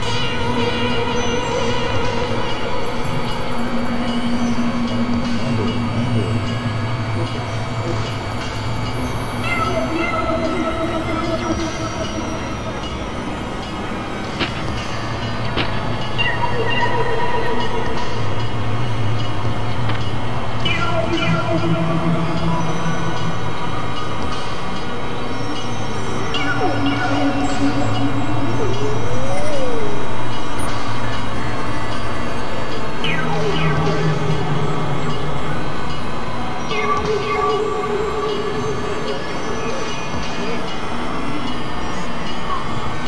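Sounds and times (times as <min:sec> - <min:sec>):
electronic drone music: 0:00.0 - 0:43.0.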